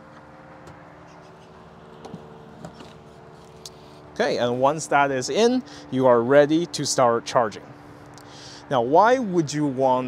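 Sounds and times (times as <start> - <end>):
charging station electrical hum: 0.0 - 10.0.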